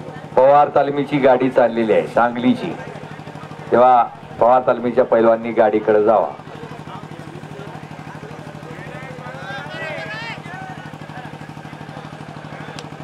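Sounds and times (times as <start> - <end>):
crowd voices: 0.0 - 13.0
engine idling: 0.0 - 13.0.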